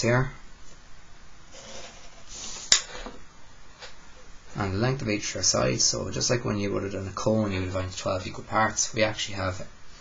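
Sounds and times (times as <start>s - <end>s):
pencil scraping on paper: 1.5s - 2.7s.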